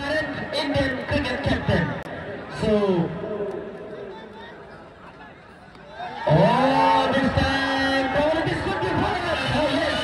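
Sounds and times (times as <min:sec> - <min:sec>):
crowd shouting and cheering: 0:01.7 - 0:10.0.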